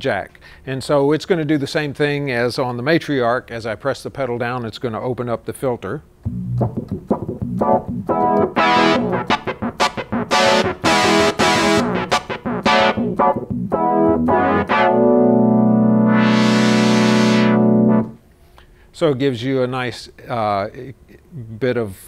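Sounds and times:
analog synthesizer notes: 6.3 - 18.2.

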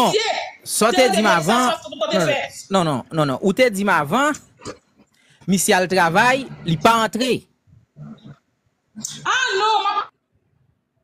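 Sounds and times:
person speaking: 0.0 - 4.6, 5.4 - 8.4.

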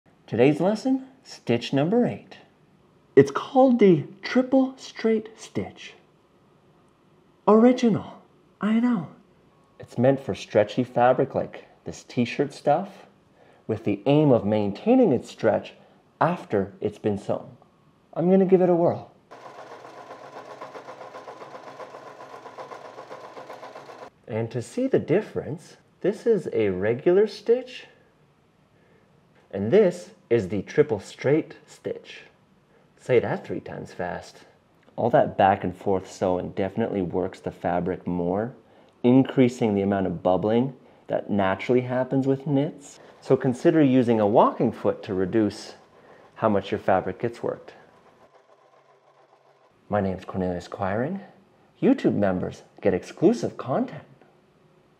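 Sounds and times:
sewing machine running: 19.3 - 24.2, 43.0 - 49.9.

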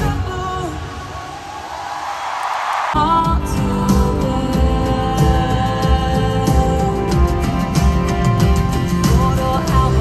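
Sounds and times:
live concert music: 0.0 - 10.0.

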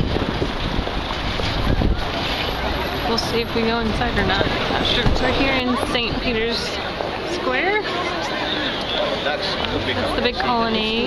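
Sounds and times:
wind buffeting microphone: 0.0 - 6.5
faint voices: 0.9 - 11.0.

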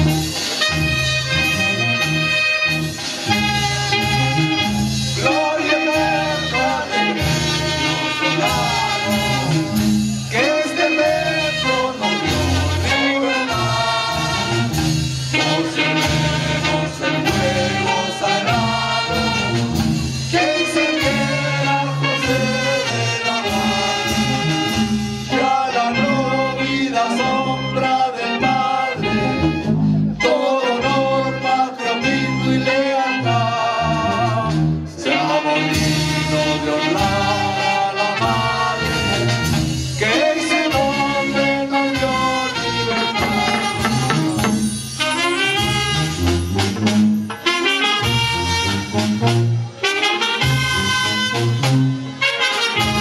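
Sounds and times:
instrumental accompaniment with brass: 0.0 - 53.0
group singing a hymn: 5.1 - 44.8.

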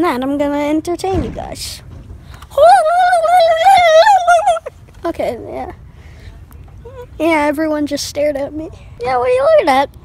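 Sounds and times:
boy singing long high note: 2.5 - 4.7.

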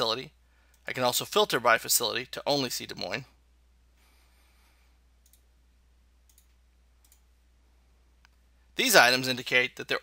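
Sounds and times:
computer mouse clicks: 5.2 - 5.5, 6.2 - 7.3.

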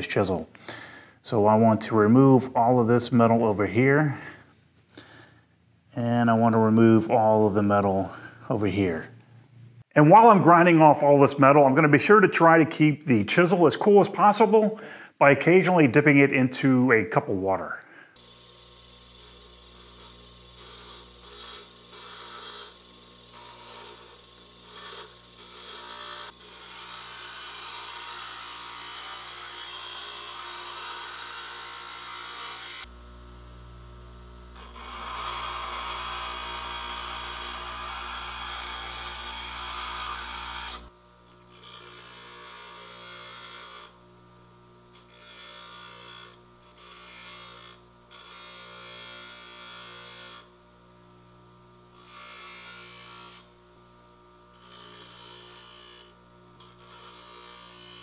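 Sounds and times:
chisel grinding on grinding wheel: 6.3 - 8.8, 18.2 - 33.0, 34.1 - 50.6, 51.9 - 53.7, 54.5 - 58.0
bench grinder motor hum: 18.2 - 58.0.

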